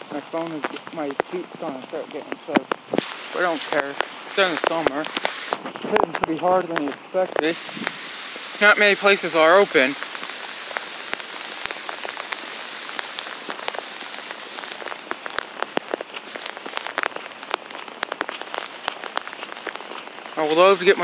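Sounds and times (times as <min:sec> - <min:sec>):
rain on wet pavement: 0:00.0 - 0:21.0.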